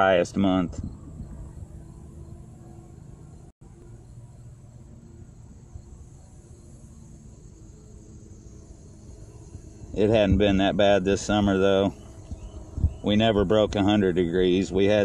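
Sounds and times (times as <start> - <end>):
high insect drone: 0.0 - 15.0
low outdoor rumble: 0.0 - 15.0.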